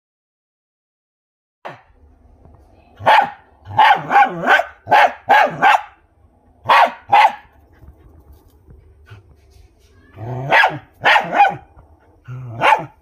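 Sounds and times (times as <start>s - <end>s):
dog barking sharply: 3.0s - 6.0s, 6.6s - 7.5s, 10.4s - 11.7s, 12.5s - 13.0s.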